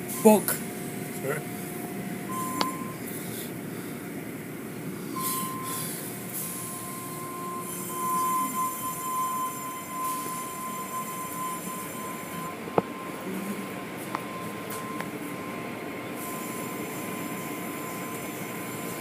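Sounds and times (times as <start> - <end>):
high steady squeal: 5.1 - 19.0.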